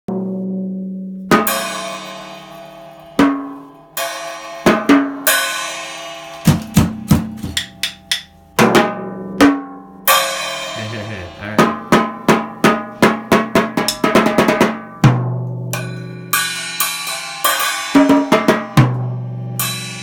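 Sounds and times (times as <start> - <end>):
drum hits: 6.4 - 16.6
toms ringing low: 10.2 - 12.3
crash cymbal ringing: 15.8 - 20.0.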